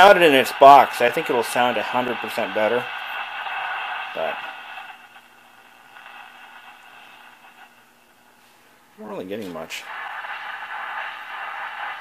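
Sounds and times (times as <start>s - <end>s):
radio static hiss: 0.0s - 12.0s
steady low hum: 0.0s - 12.0s.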